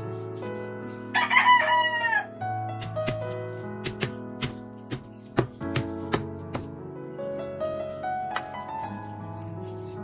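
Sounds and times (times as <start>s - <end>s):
background music: 0.0s - 10.0s
rooster crowing: 1.1s - 2.3s.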